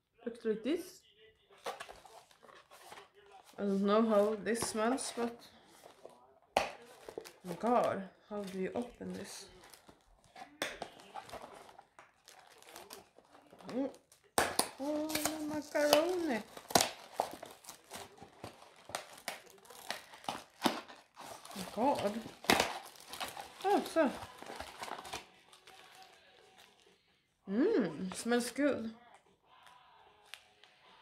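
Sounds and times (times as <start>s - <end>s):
tea packaging crinkling: 1.6s - 26.9s.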